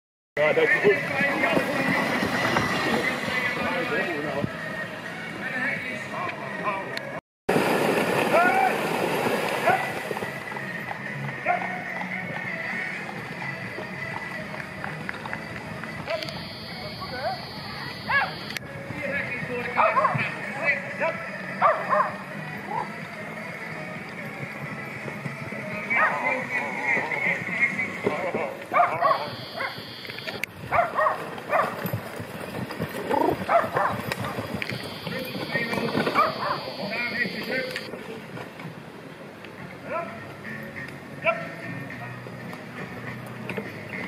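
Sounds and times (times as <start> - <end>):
outdoor crowd noise: 0.4 - 44.0
people shouting and calling: 8.3 - 8.8, 15.9 - 18.6.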